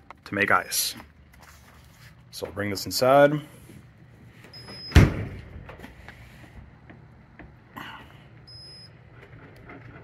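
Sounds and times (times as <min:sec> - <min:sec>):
freezer door thudding shut: 0:04.9 - 0:05.5.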